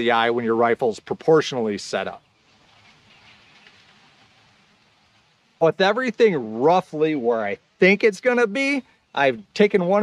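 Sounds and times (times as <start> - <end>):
soft outdoor hiss: 0.0 - 10.0.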